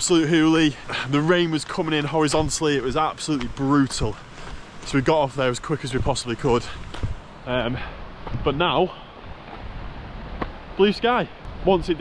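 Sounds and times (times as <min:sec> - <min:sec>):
wind rushing over microphone: 0:00.0 - 0:12.0.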